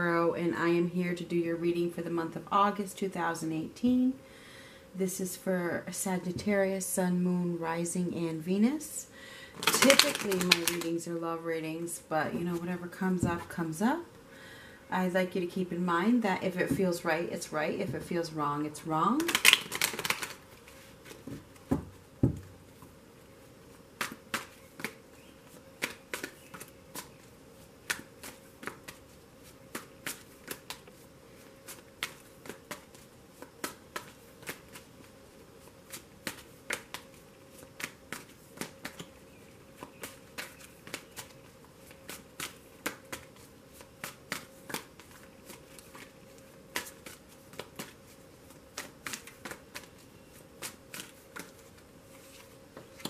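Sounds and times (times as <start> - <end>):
cards slapping and riffling: 9.6 - 11.0, 19.2 - 22.8, 24.0 - 53.0.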